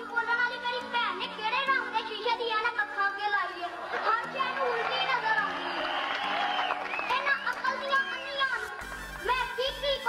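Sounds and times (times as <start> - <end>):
children's voices overlapping: 0.0 - 5.8, 7.2 - 10.0.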